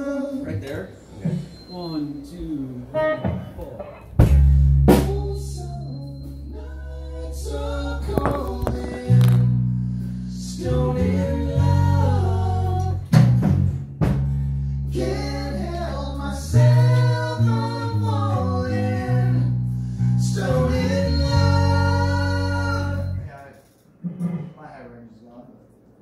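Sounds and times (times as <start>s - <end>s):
men singing in close harmony: 5.1s - 9.6s, 10.4s - 13.1s, 14.9s - 19.6s, 20.2s - 23.2s.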